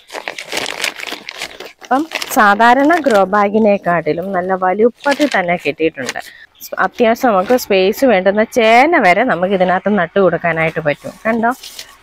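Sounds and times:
plastic sack rustling: 0:00.0 - 0:06.3.

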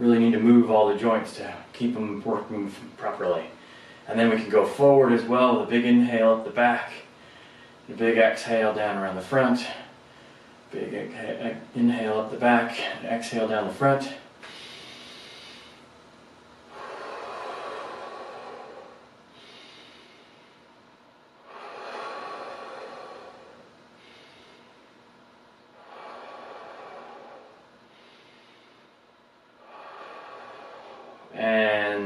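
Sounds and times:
man breathing deeply: 0:03.6 - 0:04.1, 0:07.1 - 0:07.9, 0:09.6 - 0:10.7, 0:14.4 - 0:15.9, 0:16.6 - 0:32.0.

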